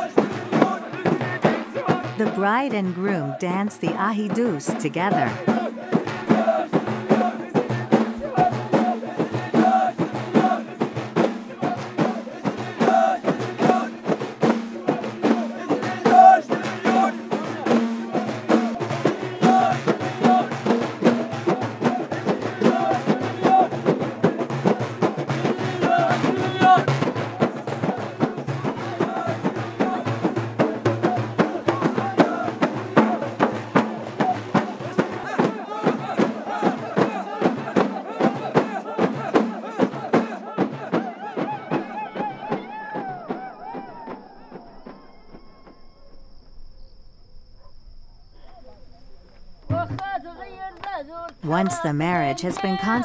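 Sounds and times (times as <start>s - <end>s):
group singing: 0.0s - 42.3s
frame drums beaten in rhythm: 0.0s - 43.4s, 51.4s - 53.0s.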